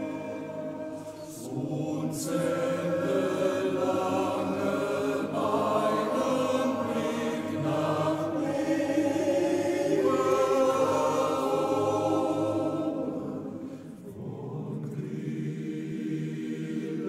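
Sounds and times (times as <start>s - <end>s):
men's choir singing: 0.0s - 17.0s.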